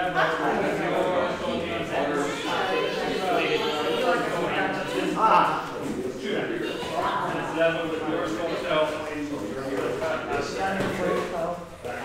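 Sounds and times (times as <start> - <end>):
man speaking indistinctly: 0.0 - 12.0.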